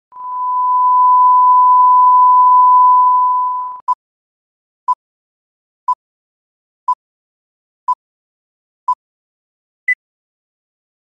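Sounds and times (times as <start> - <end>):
steady test tone: 0.2 - 3.8.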